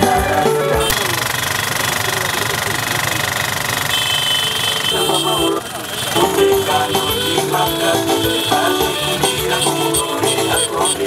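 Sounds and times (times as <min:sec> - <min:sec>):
music: 0:00.0 - 0:01.0, 0:06.2 - 0:11.0
crowd voices: 0:00.0 - 0:11.0
motorcycle engines running: 0:00.0 - 0:11.0
steady high tone: 0:04.0 - 0:11.0.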